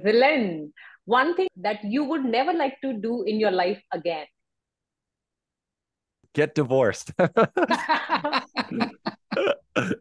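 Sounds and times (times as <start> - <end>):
people laughing: 7.1 - 9.9.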